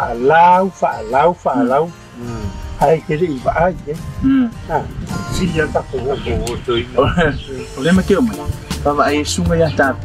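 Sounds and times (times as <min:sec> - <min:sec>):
background music: 0:00.0 - 0:10.0
men speaking: 0:00.0 - 0:10.0.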